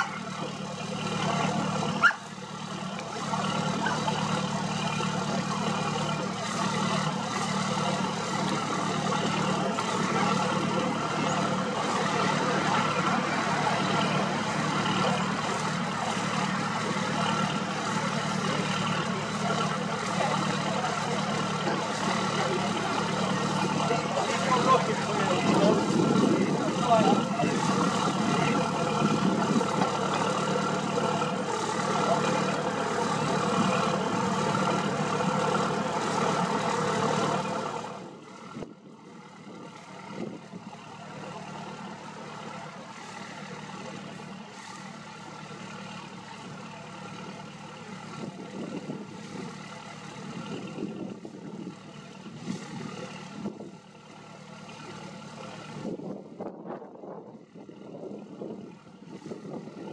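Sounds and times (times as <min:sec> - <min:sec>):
engine humming: 0:00.0 - 0:59.9.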